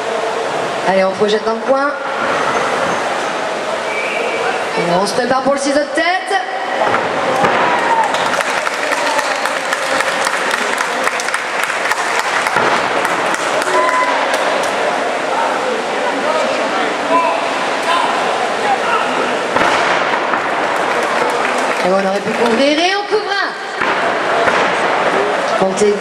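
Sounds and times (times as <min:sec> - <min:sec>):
crowd voices in echoing hall: 0:00.0 - 0:26.0
crowd shouts: 0:06.8 - 0:11.1, 0:12.3 - 0:15.7
sharp claps and knocks: 0:07.4 - 0:14.8, 0:19.6 - 0:22.6.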